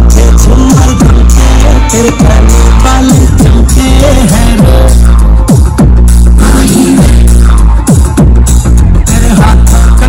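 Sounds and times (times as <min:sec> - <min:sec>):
dance music with heavy bass: 0:00.0 - 0:10.0.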